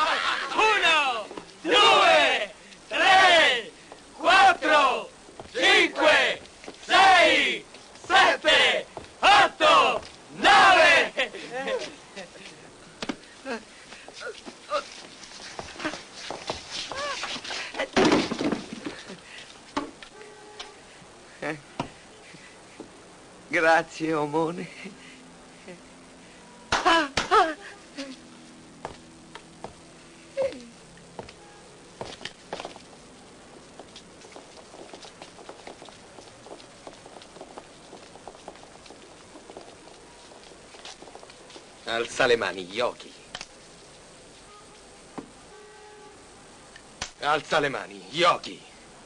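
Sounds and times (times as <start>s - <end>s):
men grunting and exclaiming: 0.0s - 12.4s
steady hiss: 0.0s - 49.0s
soft footsteps: 5.3s - 5.7s, 8.9s - 9.2s, 13.9s - 20.2s, 28.8s - 29.9s, 31.1s - 42.8s.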